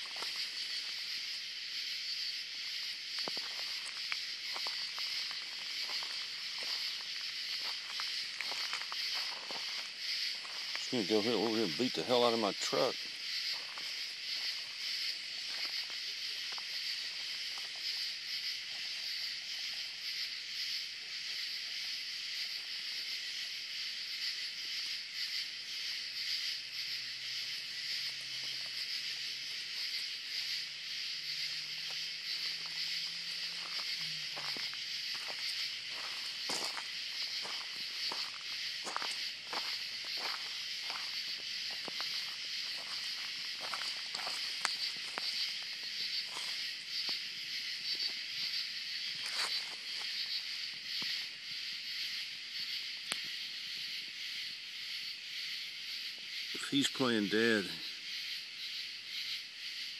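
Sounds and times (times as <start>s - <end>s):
crunches on gravel: 0.0s - 1.6s, 2.6s - 19.8s, 27.7s - 51.2s
chorus of night insects: 0.0s - 59.9s.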